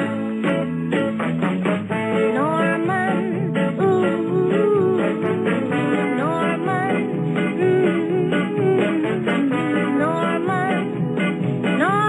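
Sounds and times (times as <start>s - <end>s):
pop song with singer and band: 0.0s - 12.0s.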